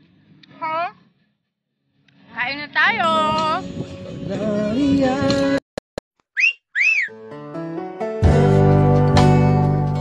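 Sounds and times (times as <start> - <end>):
rising and falling whistle effects: 6.3 - 7.2.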